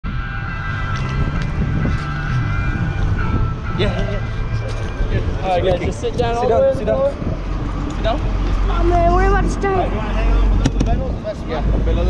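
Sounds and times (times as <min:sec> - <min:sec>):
boat engine rumble: 0:00.0 - 0:12.0
high-pitched engine whine: 0:00.0 - 0:12.0
wind buffeting microphone: 0:00.0 - 0:12.0.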